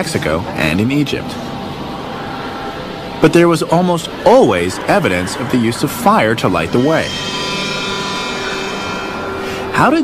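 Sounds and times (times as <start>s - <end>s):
dark ambient drone: 0.0s - 10.0s.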